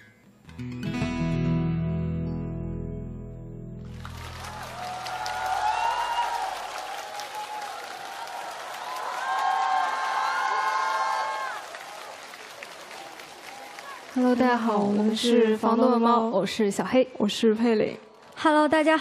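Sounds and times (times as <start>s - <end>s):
acoustic guitar chord ringing: 0.0s - 4.2s
audience applause and cheering: 3.8s - 15.3s.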